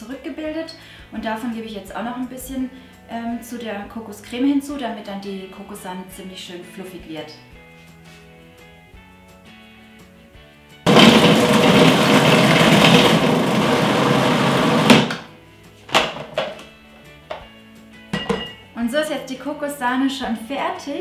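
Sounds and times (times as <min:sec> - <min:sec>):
food processor running: 0:10.9 - 0:15.3.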